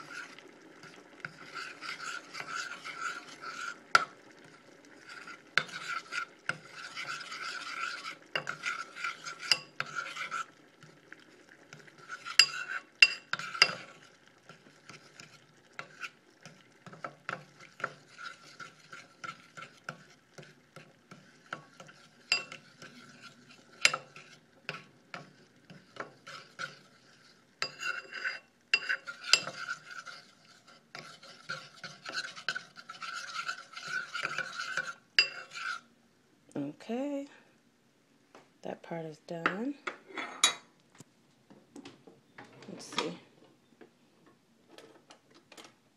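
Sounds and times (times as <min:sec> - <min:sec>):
metal spoon scraping bowl: 0:00.0 - 0:00.4, 0:01.2 - 0:04.1, 0:05.0 - 0:10.6, 0:12.0 - 0:35.9.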